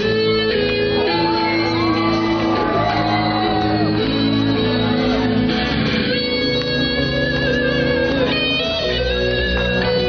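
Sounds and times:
electric guitars sustained notes: 0.0 - 10.0
shouted vocal: 1.0 - 4.0.

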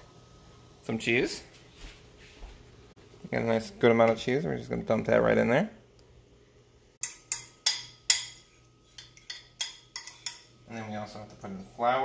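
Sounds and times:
metal utensil clinking on bowls: 7.0 - 10.6.

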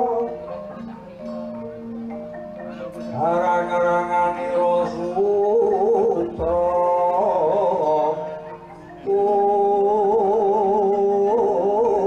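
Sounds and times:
man singing long held notes: 0.0 - 0.5, 2.7 - 12.0.

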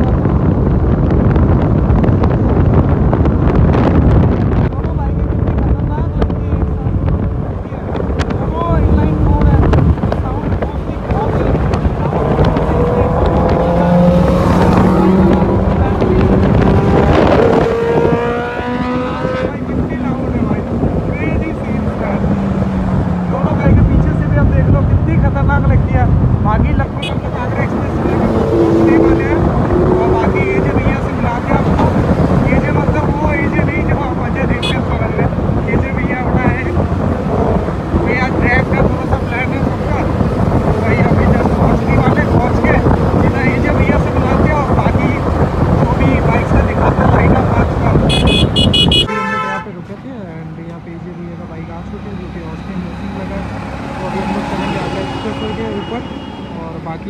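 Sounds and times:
motorcycle engine accelerating: 0.0 - 26.5, 27.3 - 49.1
wind buffeting microphone: 0.0 - 55.0.

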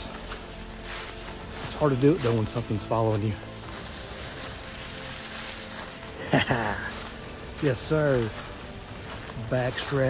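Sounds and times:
dry leaves rustling and scraping: 0.0 - 10.0
man's voice: 1.5 - 3.5, 6.2 - 8.5, 9.2 - 10.0.

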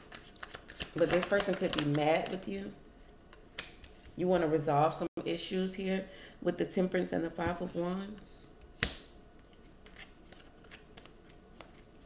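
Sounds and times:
cards being shuffled: 0.0 - 2.4, 8.8 - 12.0.

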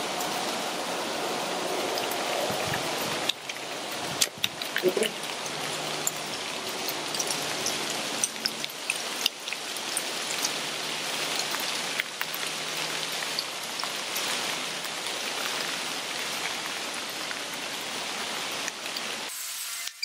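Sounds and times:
steady hiss with ticks and pops: 1.9 - 20.0.

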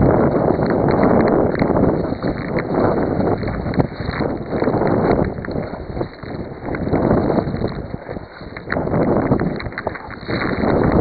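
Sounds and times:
sea wash: 0.0 - 11.0
wind buffeting microphone: 0.0 - 11.0.

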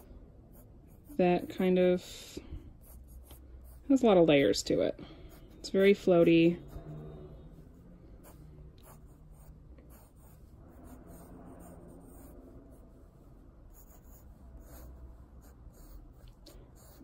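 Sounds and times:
pencil sketching on paper: 0.0 - 17.0.

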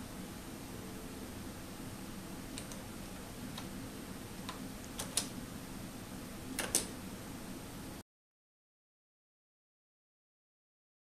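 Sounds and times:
low computer hum: 0.0 - 8.0
keyboard keystrokes: 2.5 - 2.8, 4.4 - 5.3, 6.6 - 7.0.

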